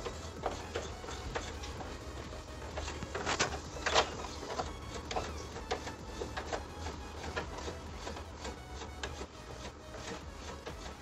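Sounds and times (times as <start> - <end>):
brush scrubbing metal fins: 0.0 - 11.0.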